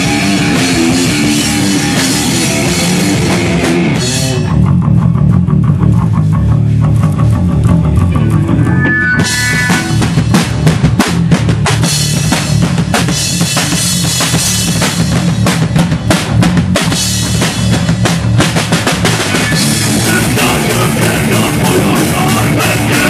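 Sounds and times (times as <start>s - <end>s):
bass guitar: 0.0s - 23.0s
drum kit with cymbal and snare hits: 0.0s - 23.0s.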